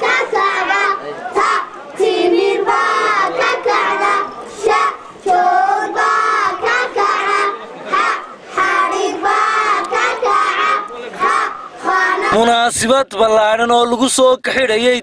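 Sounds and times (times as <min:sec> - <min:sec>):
children singing in unison: 0:00.0 - 0:12.5.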